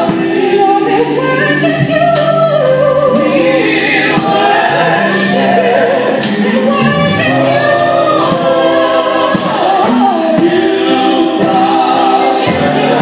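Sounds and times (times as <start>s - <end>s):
drums and cymbals: 0.0s - 13.0s
group singing gospel: 0.0s - 13.0s.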